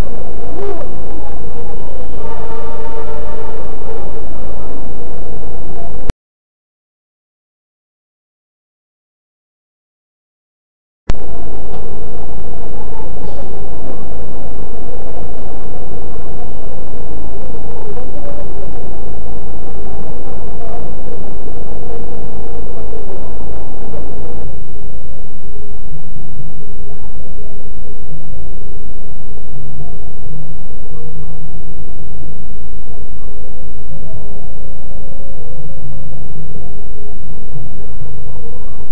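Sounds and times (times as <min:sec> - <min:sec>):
faint voices: 0:00.0 - 0:06.1, 0:11.1 - 0:38.9
low dull hum: 0:00.0 - 0:06.2, 0:11.1 - 0:38.9.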